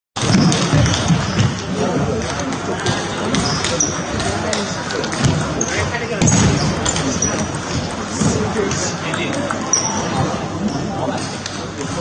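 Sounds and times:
people talking: 0:00.2 - 0:12.0
table tennis balls clicking: 0:00.2 - 0:12.0.

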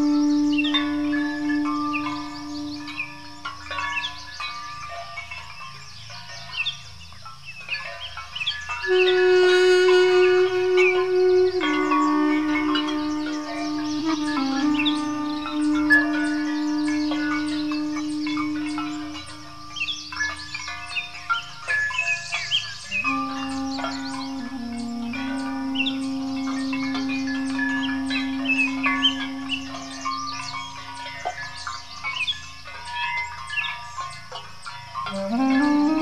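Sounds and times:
duduk playing long low notes: 0:00.0 - 0:03.6, 0:08.9 - 0:20.2, 0:22.9 - 0:30.5, 0:35.1 - 0:36.0
birds chirping: 0:00.0 - 0:36.0.

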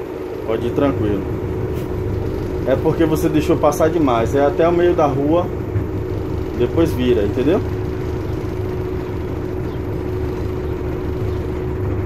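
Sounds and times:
bus diesel engine rumbling: 0:00.0 - 0:12.0
constant hum: 0:00.0 - 0:12.0.

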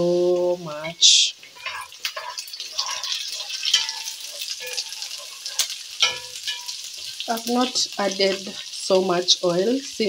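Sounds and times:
vegetables sizzling in oil: 0:00.0 - 0:10.0
wooden spoon stirring in pan: 0:00.0 - 0:10.0.

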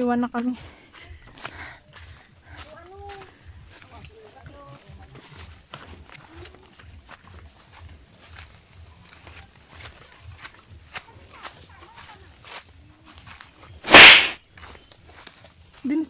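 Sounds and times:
foliage brushing microphone: 0:13.8 - 0:14.4.

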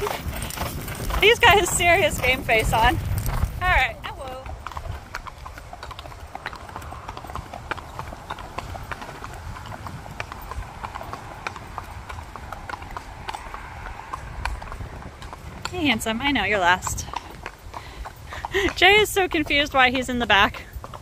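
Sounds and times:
horse hooves on asphalt: 0:00.0 - 0:21.0.

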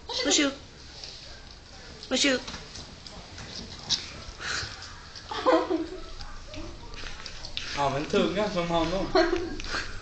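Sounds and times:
dog chewing food: 0:06.1 - 0:09.8.

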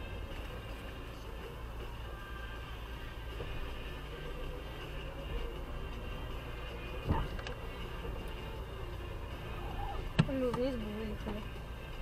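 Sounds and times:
car engine and tyres drone: 0:00.0 - 0:12.0.

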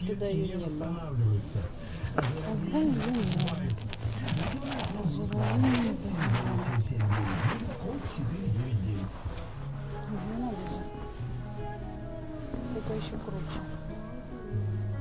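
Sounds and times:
rustling: 0:01.2 - 0:15.0.

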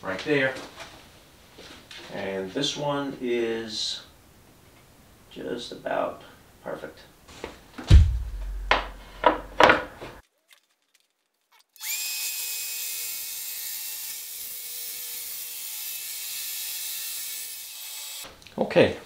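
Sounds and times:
heavy knock on saw rail: 0:07.9 - 0:09.8
track saw motor cutting wood: 0:11.8 - 0:18.3.

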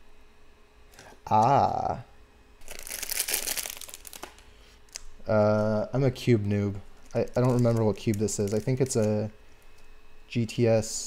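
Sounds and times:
packaging crinkling: 0:02.6 - 0:05.1, 0:06.3 - 0:09.8.

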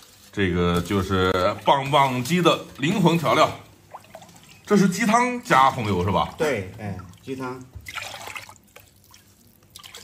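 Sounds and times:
broth pouring and splashing: 0:00.0 - 0:10.0.

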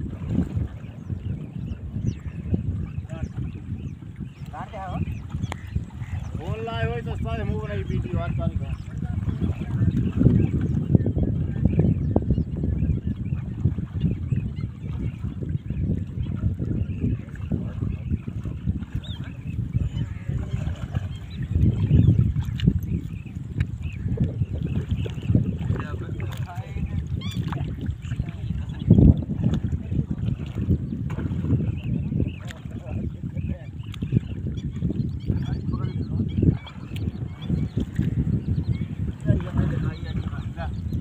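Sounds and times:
water sloshing and splashing: 0:00.0 - 0:41.0.

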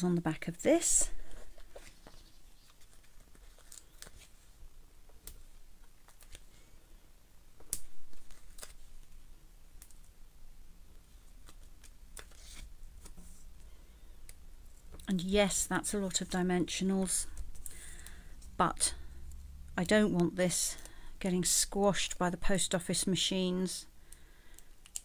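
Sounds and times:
paper handling clicks and crinkles: 0:00.9 - 0:06.6, 0:07.6 - 0:09.2, 0:10.9 - 0:15.1, 0:24.1 - 0:25.0
paper rustle: 0:01.0 - 0:04.6, 0:08.1 - 0:09.1, 0:11.4 - 0:13.5.

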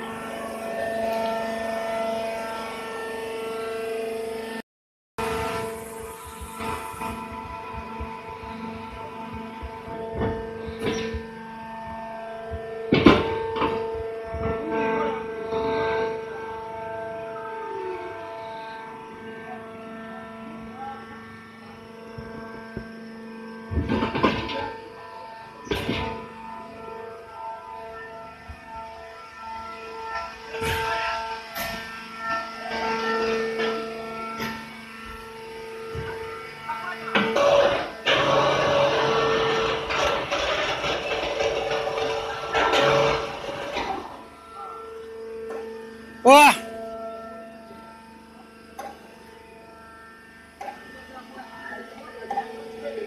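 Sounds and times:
hydraulic baler humming: 0:00.0 - 0:04.6, 0:05.2 - 0:53.0.

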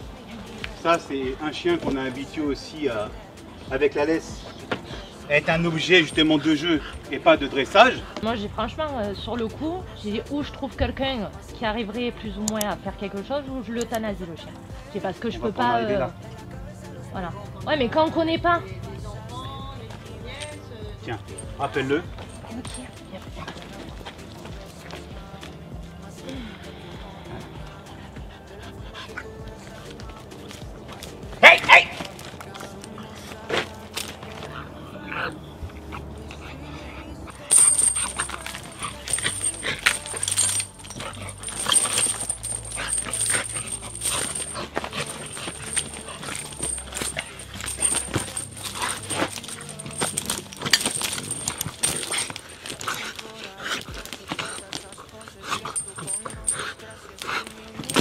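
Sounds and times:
leash scuffling and rattling: 0:00.4 - 0:11.0, 0:17.9 - 0:26.2, 0:27.5 - 0:34.6, 0:37.3 - 0:58.0.

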